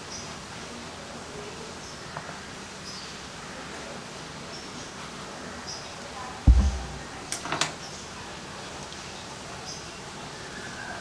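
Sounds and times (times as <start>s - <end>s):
quiet steady hiss: 6.5s - 7.9s.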